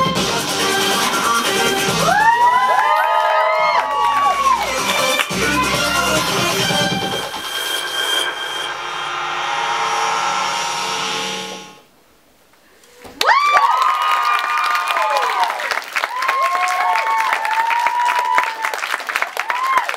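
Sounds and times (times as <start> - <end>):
whoops and cheers: 2.0 - 5.2, 13.2 - 19.9
audience applause: 2.0 - 6.8, 13.2 - 19.9.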